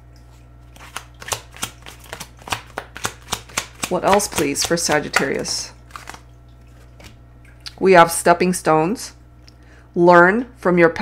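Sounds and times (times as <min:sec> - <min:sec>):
cards being shuffled: 0:00.7 - 0:07.2.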